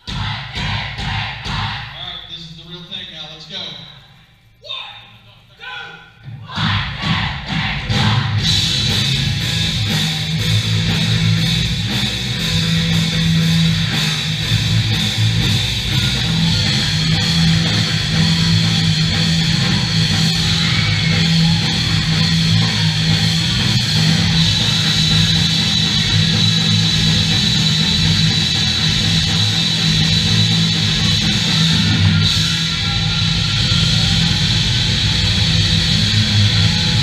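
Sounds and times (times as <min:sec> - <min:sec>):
pop-punk rock band playing live: 0:07.9 - 0:37.0.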